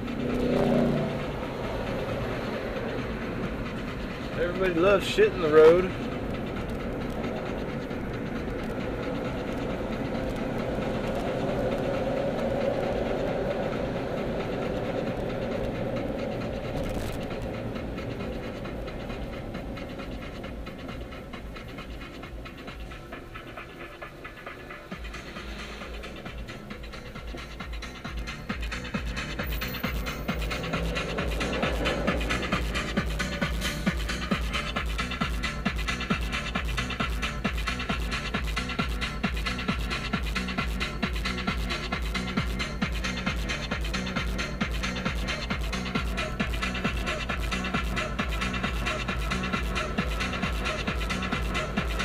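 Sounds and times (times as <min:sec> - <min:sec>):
car cabin road and engine noise: 0:00.0 - 0:52.0
music with steady low beat: 0:00.0 - 0:52.0.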